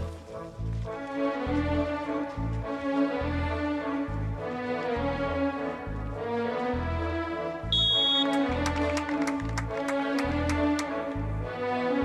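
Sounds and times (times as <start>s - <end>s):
held high notes: 7.8s - 8.6s.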